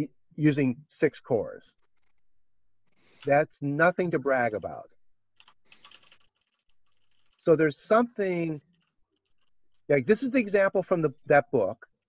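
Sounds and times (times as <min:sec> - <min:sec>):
keyboard keys tapping: 0:05.4 - 0:07.4.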